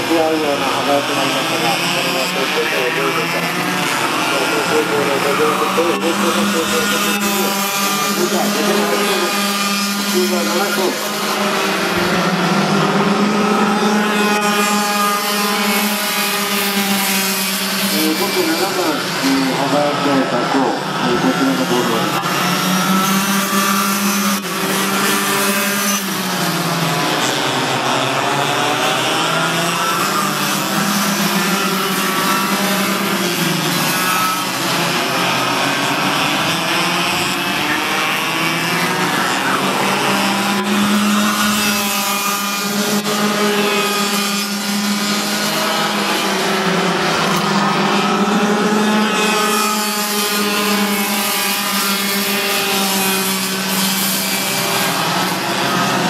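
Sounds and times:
kart engines racing past: 0.0 - 56.0.

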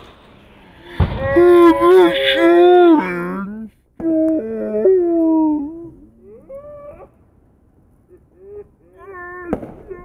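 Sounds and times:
howling voice: 1.2 - 7.1.

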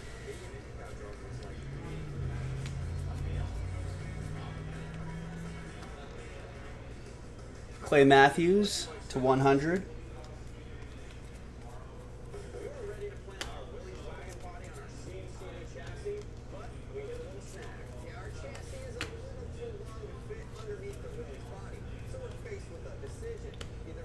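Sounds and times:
steady low hum: 0.0 - 7.8
faint indistinct voices: 0.0 - 8.0, 8.7 - 24.0.

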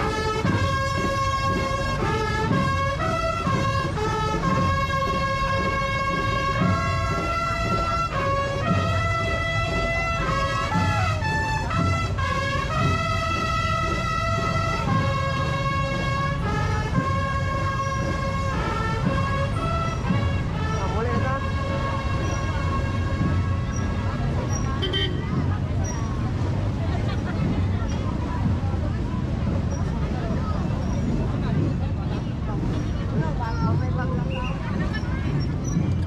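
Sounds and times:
brass band playing: 0.0 - 25.4
crowd voices: 0.0 - 36.0.

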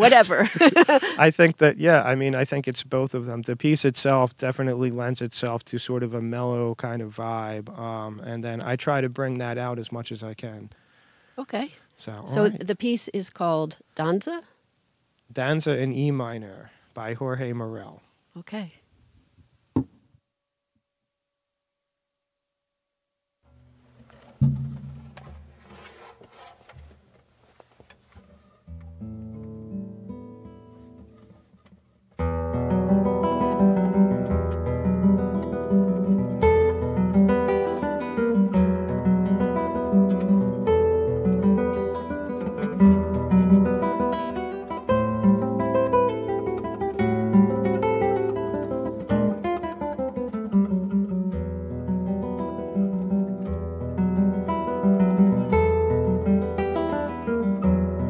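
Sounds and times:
fingerpicked classical guitar: 28.6 - 31.5, 32.2 - 58.0.

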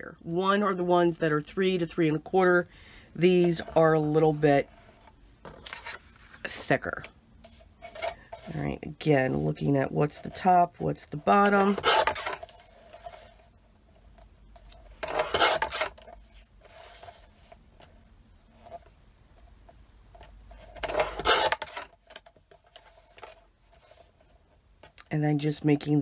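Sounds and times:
paper rustling and sliding: 4.6 - 6.8, 7.4 - 9.6, 11.4 - 13.5, 14.6 - 17.6, 20.5 - 24.3
paper trimmer cutting paper: 11.4 - 12.4, 15.0 - 16.0, 20.8 - 21.8.

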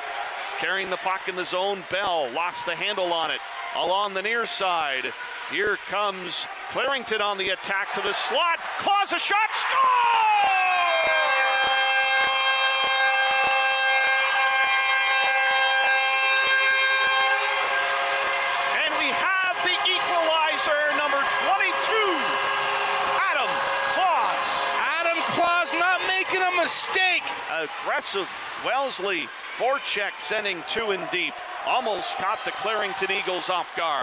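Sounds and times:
crowd noise: 0.0 - 34.0
voices shouting and cheering: 0.0 - 34.0
arena goal horn blaring: 10.4 - 27.9.

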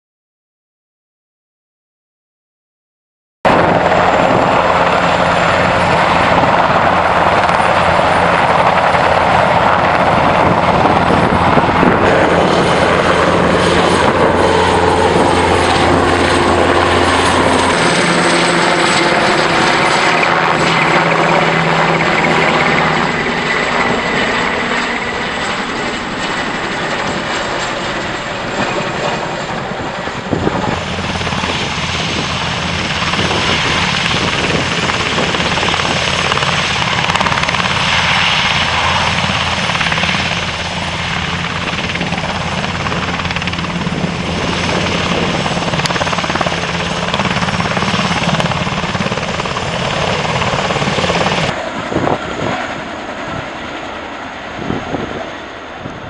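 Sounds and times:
helicopter rotors and engines: 3.5 - 56.0.

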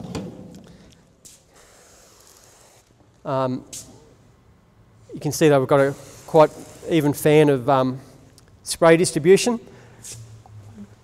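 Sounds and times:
sprayer nozzle hissing: 5.8 - 7.1.

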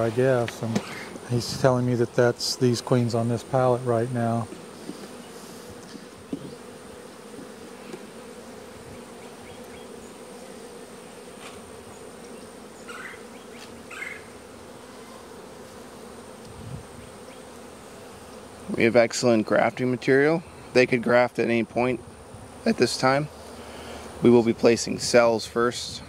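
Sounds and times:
honey bees buzzing: 0.0 - 26.0.

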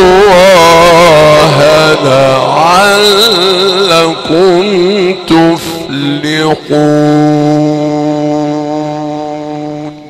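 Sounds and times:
man reciting melodically: 0.0 - 10.0
voice echo: 0.0 - 10.0.

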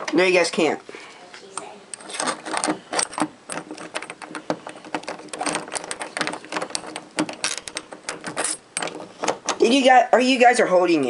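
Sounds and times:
doorknob lock clicking and rattling: 2.0 - 9.6.

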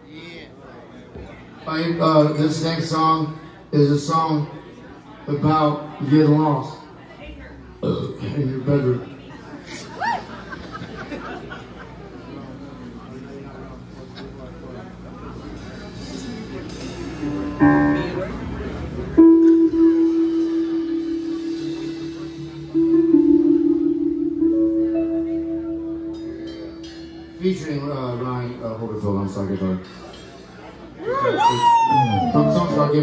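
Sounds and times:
live band playing slow song: 15.6 - 27.8, 29.8 - 33.0.

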